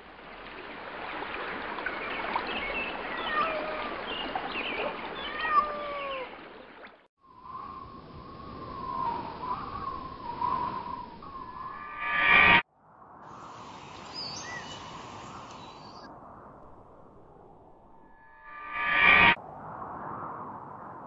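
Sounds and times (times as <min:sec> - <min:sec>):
running water: 0:00.0 - 0:07.1.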